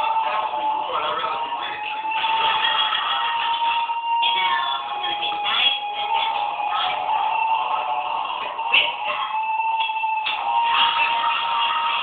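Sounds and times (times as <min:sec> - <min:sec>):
electronic drone: 0:00.0 - 0:12.0.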